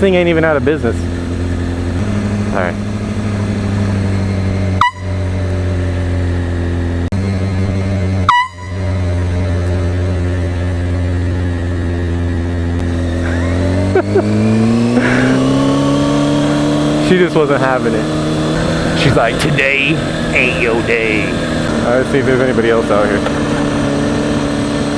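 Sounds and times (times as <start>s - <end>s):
motorcycle engine idling: 0.0s - 14.1s
air horn blasts: 4.7s - 5.4s, 8.2s - 9.3s.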